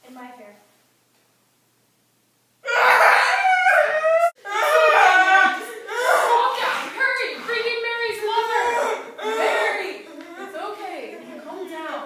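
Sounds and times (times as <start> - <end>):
girl wailing and crying: 2.6 - 6.8, 8.5 - 10.2.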